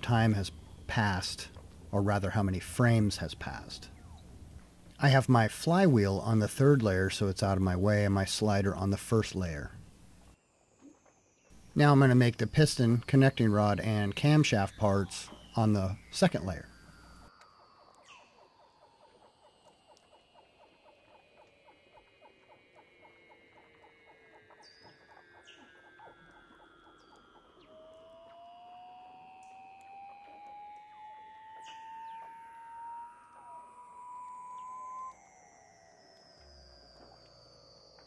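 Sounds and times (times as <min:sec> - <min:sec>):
rising whistle: 0:10.8 - 0:38.0.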